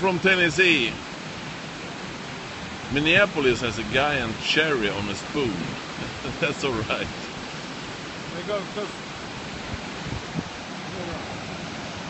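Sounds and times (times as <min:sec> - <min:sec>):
river water rushing: 0:00.0 - 0:12.0.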